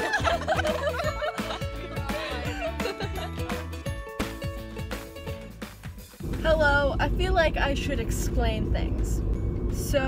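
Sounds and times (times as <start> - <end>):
women laughing and shrieking: 0.0 - 3.4
pop backing track: 0.0 - 6.5.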